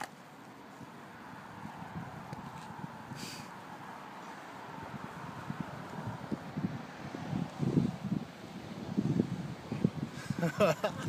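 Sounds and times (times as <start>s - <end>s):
wind on microphone: 0.8s - 3.7s, 4.3s - 11.0s.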